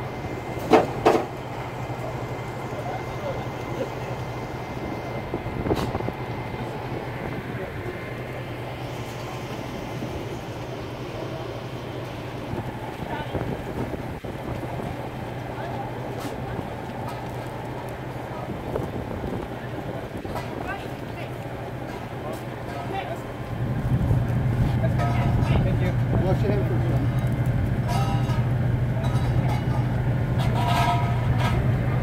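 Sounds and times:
distant voices: 0.0s - 32.0s
generator humming: 0.0s - 32.0s.

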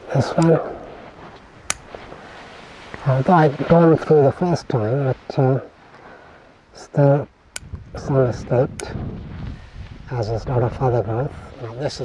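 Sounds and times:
pruning scissors snipping twig: 1.6s - 1.9s.

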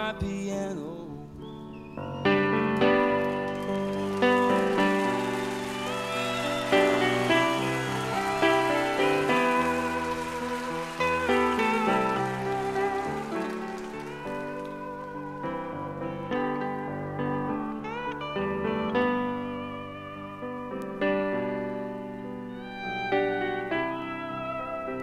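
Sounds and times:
piano chords: 0.0s - 25.0s
guitar with sliding notes: 2.0s - 25.0s.

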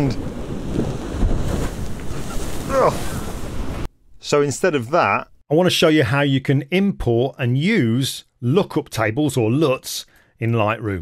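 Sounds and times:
surf breaking against seawall: 0.0s - 3.9s
wind buffeting microphone: 0.0s - 3.9s.

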